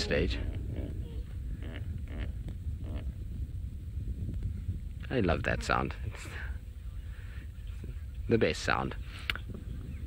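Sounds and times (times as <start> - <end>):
low wind rumble: 0.0 - 10.0.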